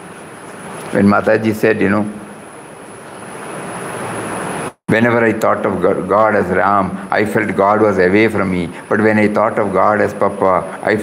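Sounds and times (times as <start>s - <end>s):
faint high whine: 0.0s - 11.0s
steady rushing noise: 0.0s - 11.0s.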